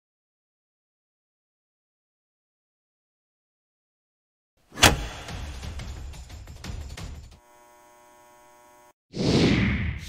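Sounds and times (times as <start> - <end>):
music: 4.8 - 7.4.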